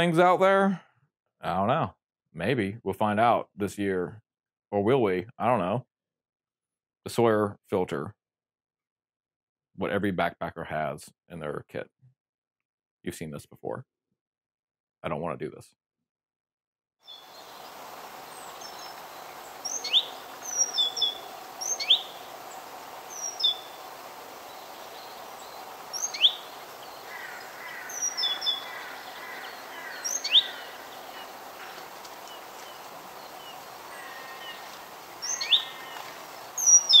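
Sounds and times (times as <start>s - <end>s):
birds chirping: 17.1s - 37.0s
steady background hiss: 17.2s - 37.0s
soft bird trill: 18.4s - 31.5s, 32.2s - 37.0s.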